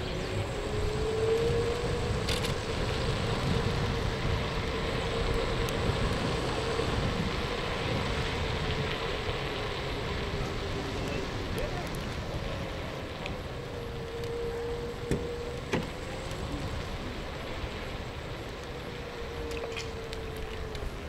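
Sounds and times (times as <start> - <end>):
road noise rumble: 0.0 - 21.0
wind buffeting microphone: 0.0 - 21.0.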